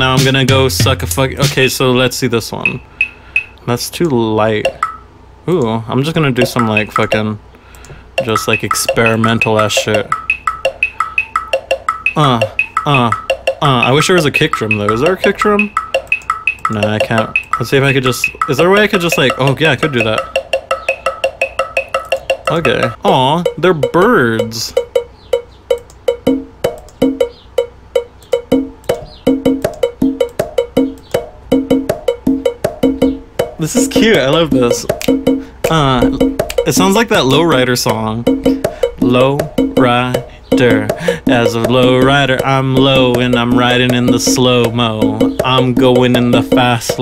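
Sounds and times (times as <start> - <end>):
conga hits: 0.0 - 1.7, 8.2 - 23.6, 24.4 - 47.0
sharp clicking percussion: 0.0 - 1.8, 2.6 - 5.0, 5.6 - 47.0
synthesized drum loop: 0.0 - 5.0, 5.6 - 7.4, 8.1 - 47.0.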